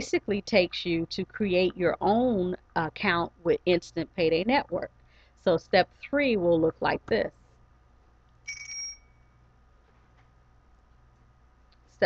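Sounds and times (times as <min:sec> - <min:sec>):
electronic alert chime: 0:08.5 - 0:09.4.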